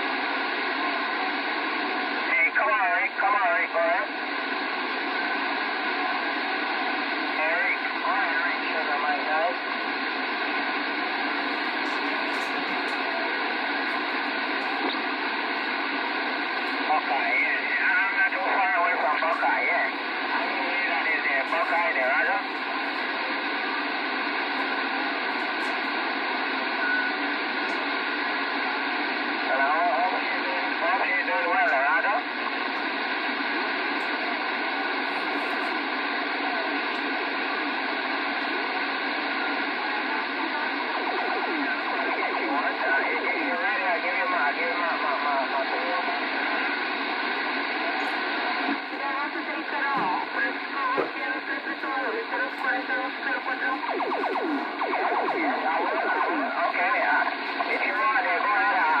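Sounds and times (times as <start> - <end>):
faint garbled radio voices: 0.0 - 59.0
radio static hiss: 0.0 - 59.0.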